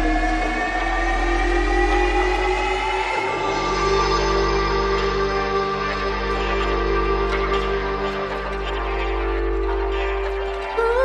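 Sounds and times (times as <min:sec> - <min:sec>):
deep bass drone: 0:00.0 - 0:11.0
rising synth chord: 0:00.0 - 0:11.0.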